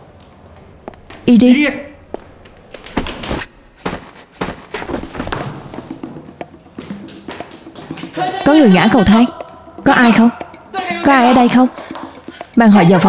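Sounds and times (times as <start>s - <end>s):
people tumbling down stairs: 2.1s - 8.2s
background music: 4.9s - 13.0s.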